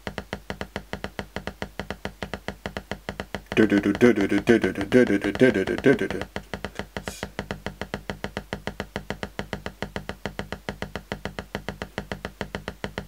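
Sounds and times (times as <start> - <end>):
rapid synth clicks: 0.1 - 13.0.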